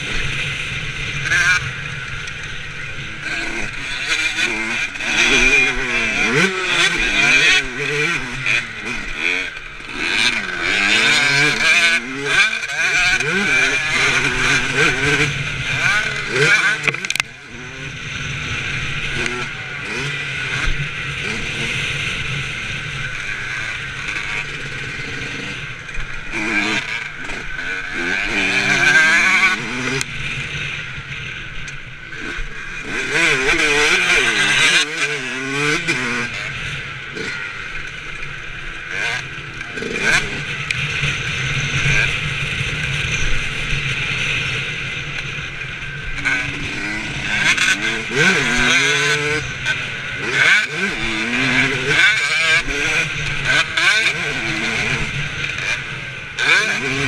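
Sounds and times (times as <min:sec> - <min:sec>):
motorbike engine revving: 0:00.0 - 0:57.0.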